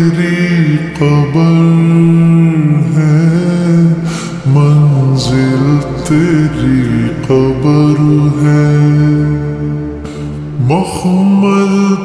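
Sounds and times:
person singing with reverb: 0.0 - 12.0.

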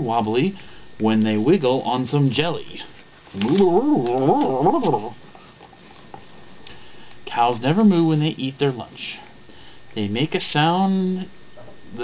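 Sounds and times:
man imitating cow moo: 3.4 - 5.2.

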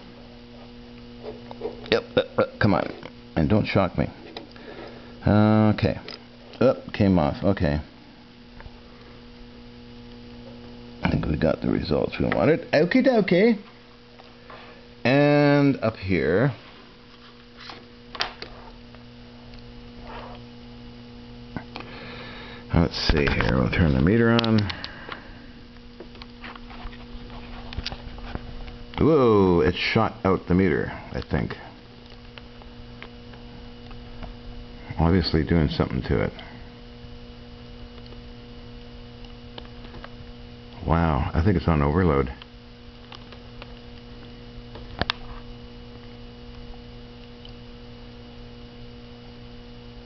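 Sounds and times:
low electrical hum: 0.0 - 50.0.

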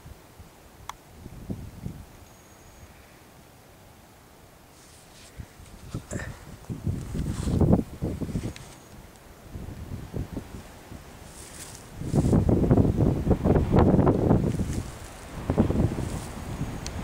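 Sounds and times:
wind buffeting microphone: 1.2 - 2.2, 5.3 - 17.0.

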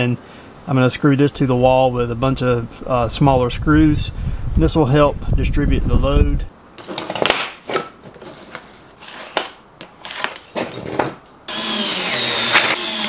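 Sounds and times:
cordless screwdriver running: 11.5 - 13.0.

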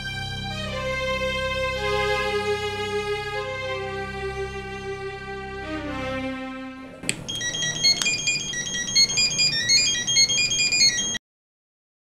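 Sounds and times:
sharp click: 7.0 - 7.3
electronic ringtone melody: 7.3 - 11.2.

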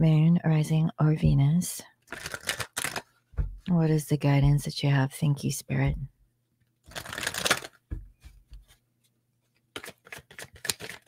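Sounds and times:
cards shuffling: 2.1 - 3.1, 6.8 - 8.8, 9.6 - 11.0.

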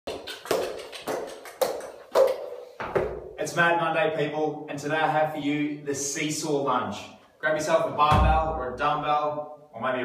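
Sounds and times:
footsteps on rubber floor: 2.3 - 3.3.

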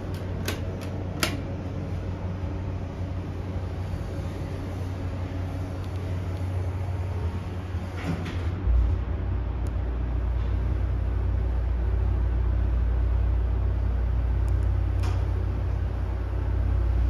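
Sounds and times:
elevator button clicks: 0.0 - 1.5
elevator machinery hum: 0.0 - 17.0.

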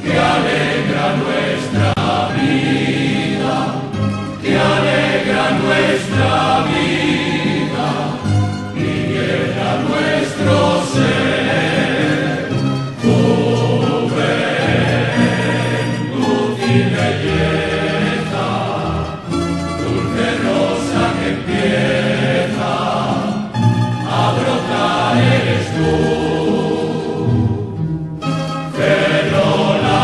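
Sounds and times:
choir singing: 0.0 - 30.0
instrumental accompaniment: 0.0 - 30.0.

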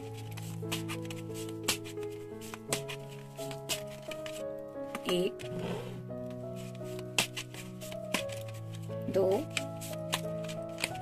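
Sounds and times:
cards being shuffled: 0.0 - 11.0
soft background music: 0.0 - 11.0.

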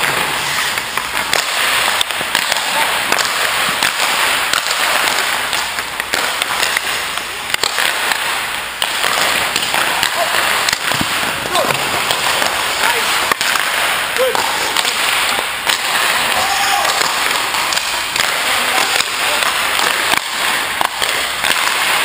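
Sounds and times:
hockey sticks clacking pucks: 0.0 - 22.0
skate blades scraping ice: 0.0 - 22.0.

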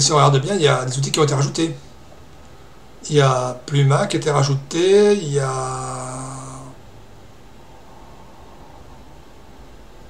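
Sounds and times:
faint background hiss: 0.0 - 10.0
man's held hesitation sound: 3.1 - 6.8.

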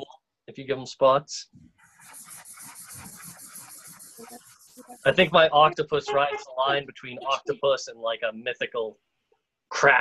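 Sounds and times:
marker scribbling on paper: 1.8 - 7.4.

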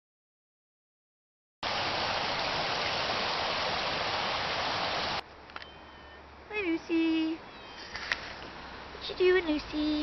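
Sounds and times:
steady hiss of noise: 1.6 - 10.0.

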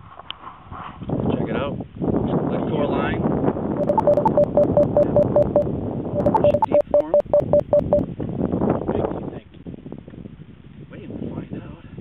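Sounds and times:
rapid electronic beeping: 3.8 - 5.6, 6.2 - 8.0.

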